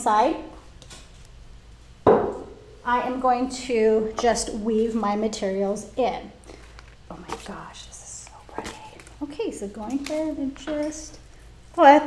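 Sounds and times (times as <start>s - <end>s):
vase knocking on wooden counter: 2.0s - 2.6s.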